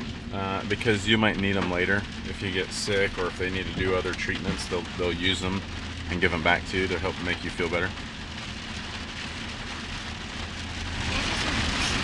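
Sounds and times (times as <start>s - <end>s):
low vehicle rumble: 0.0s - 12.0s
rain and wet road hiss: 0.0s - 12.0s.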